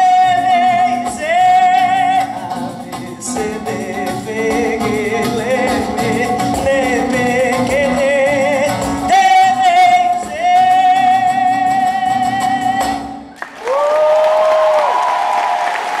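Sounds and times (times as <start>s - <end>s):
guitar accompaniment: 0.0s - 13.5s
audience applause: 13.3s - 16.0s.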